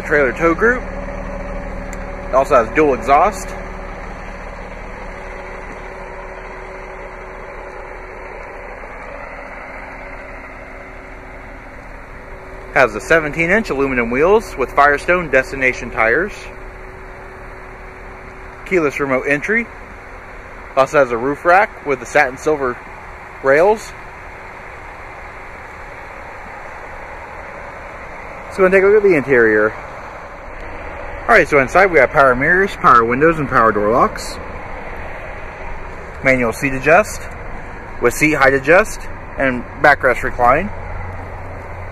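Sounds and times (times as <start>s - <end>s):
car engine idling: 0.0s - 41.9s
low unsteady rumble: 0.0s - 41.9s.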